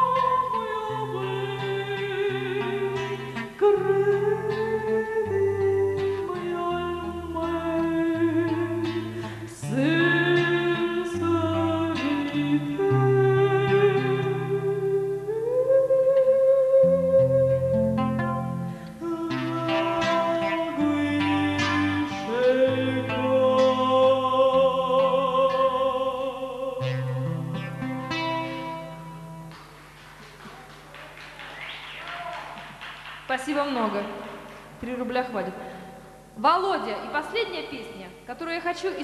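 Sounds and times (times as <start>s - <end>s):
woman singing: 0.0s - 17.3s
acoustic guitar chords: 0.0s - 39.0s
acoustic guitar chord ringing: 16.9s - 29.6s
audience applause: 29.5s - 33.5s.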